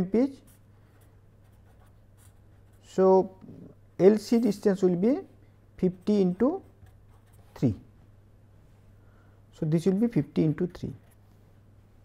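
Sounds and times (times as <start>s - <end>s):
pen scratching on paper: 0.4s - 2.9s, 6.0s - 7.8s.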